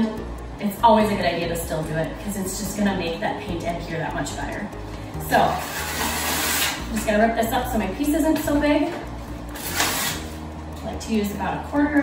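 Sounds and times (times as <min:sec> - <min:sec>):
background music: 0:00.0 - 0:12.0
sandpaper ripping: 0:05.6 - 0:06.8, 0:09.5 - 0:10.4.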